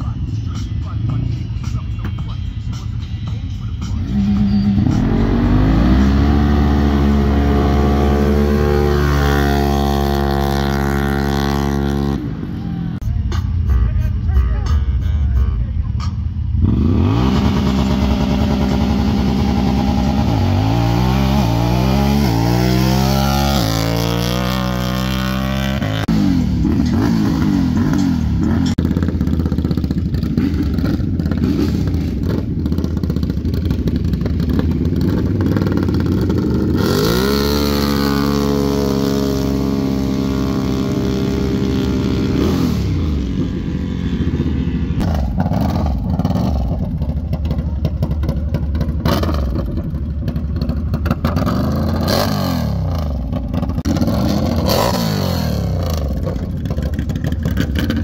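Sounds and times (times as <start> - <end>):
utility vehicle engines revving: 0.0 - 13.7, 15.6 - 58.0.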